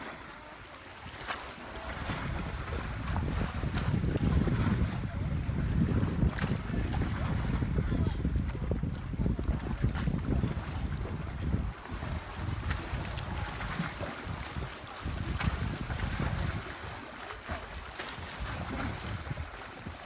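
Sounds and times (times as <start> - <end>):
sea water washing: 0.0 - 20.0
wind buffeting microphone: 1.0 - 20.0.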